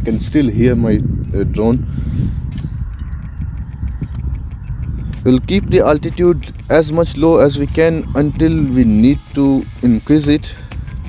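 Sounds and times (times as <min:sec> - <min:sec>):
wind rumbling on microphone: 0:00.0 - 0:11.0
distant drone propellers humming: 0:01.8 - 0:11.0.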